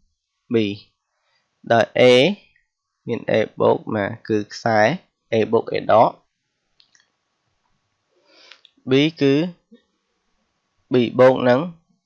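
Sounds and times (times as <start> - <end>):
person speaking syllable: 0.5 - 0.8, 1.7 - 2.4, 3.1 - 6.1, 8.9 - 9.5, 10.9 - 11.7.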